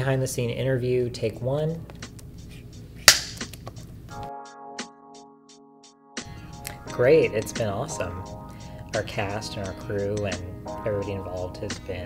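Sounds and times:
held chord music with ticking: 4.1 - 12.0.

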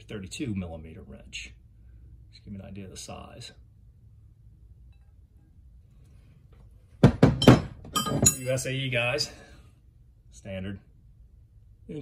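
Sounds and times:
steel wrenches clanking together: 7.4 - 8.6.

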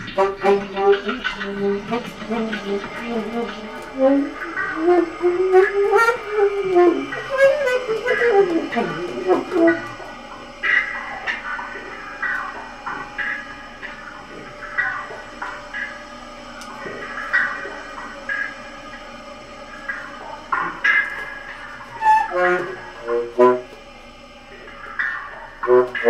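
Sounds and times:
saxophone phrase: 0.0 - 10.2, 21.9 - 23.8
faint steady drone: 0.0 - 26.0.

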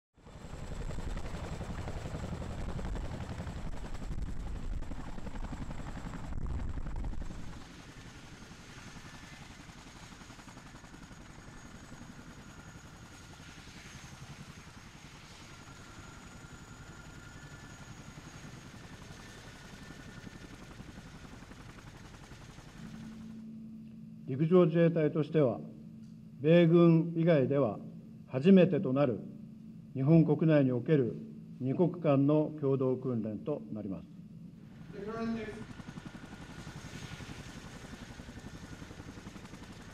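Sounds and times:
helicopter rotor beat: 0.2 - 23.8, 33.5 - 39.9
turbine whine: 34.4 - 39.9.

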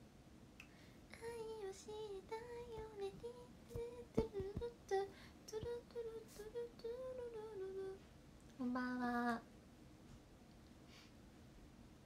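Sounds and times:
woman humming: 2.3 - 8.0.

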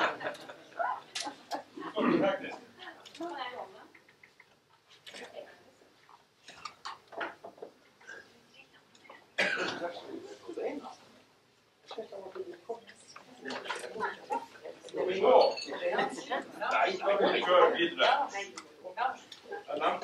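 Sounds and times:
people talking quietly: 0.0 - 20.0.

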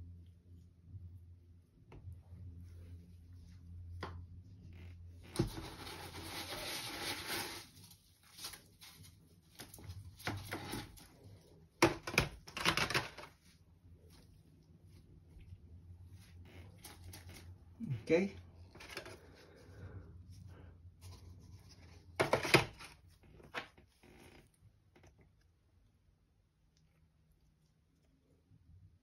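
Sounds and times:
plastic scraping and rustling: 4.7 - 13.6, 16.1 - 17.6, 18.7 - 19.6, 21.0 - 25.1.

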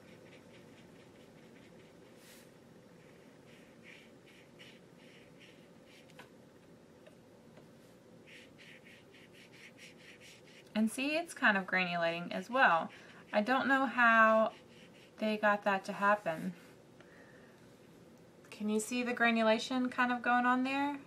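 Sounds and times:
wet paintbrush strokes on paper: 0.0 - 6.2, 8.2 - 10.8, 12.4 - 16.7.

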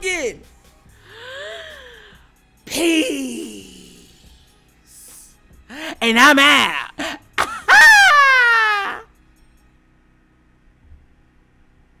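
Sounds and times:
man yelling high-pitched: 2.7 - 4.1, 5.8 - 9.0.

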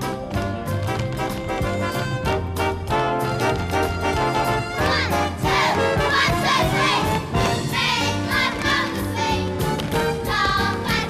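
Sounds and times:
swing band playing: 0.0 - 11.0
children's chorus singing: 4.8 - 11.0.

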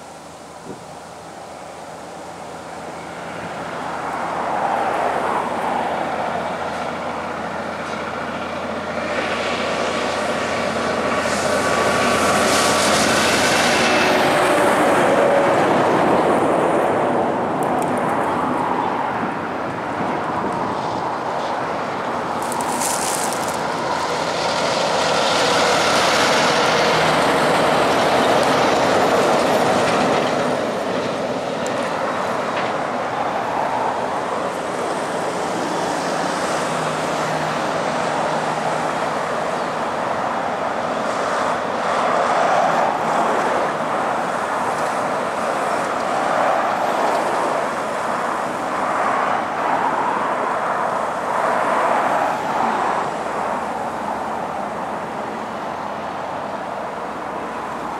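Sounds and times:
diesel truck engines: 0.0 - 57.9
heavy tyre and trailer rumble: 0.0 - 57.9.

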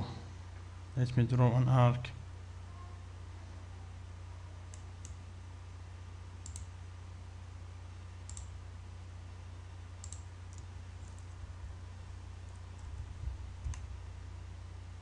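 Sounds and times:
steady low hum: 0.0 - 15.0
computer mouse clicks: 4.7 - 5.2, 6.4 - 6.7, 8.3 - 8.5, 10.0 - 11.3.

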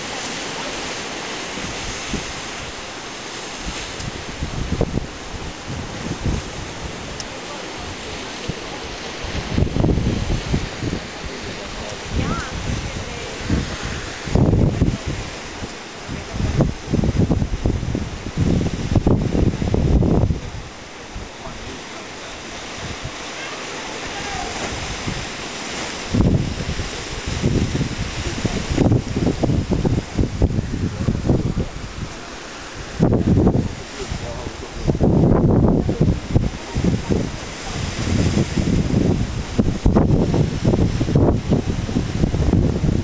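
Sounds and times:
ocean surf washing against rocks: 0.0 - 43.0
wind buffeting microphone: 0.0 - 43.0.

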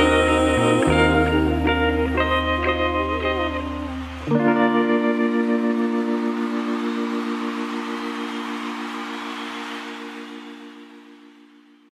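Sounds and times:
live band final chord: 0.0 - 11.2
audience applause: 2.6 - 11.7.

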